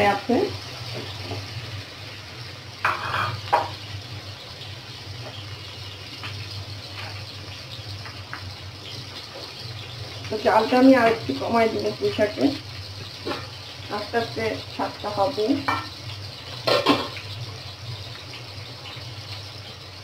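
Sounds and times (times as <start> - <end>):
onions sizzling in oil: 0.0 - 20.0
spatula scraping pan: 2.8 - 3.8.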